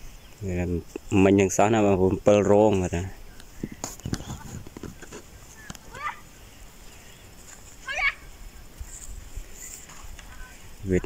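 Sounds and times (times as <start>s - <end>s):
stems knocking in dry soil: 2.7s - 7.9s, 8.7s - 10.7s.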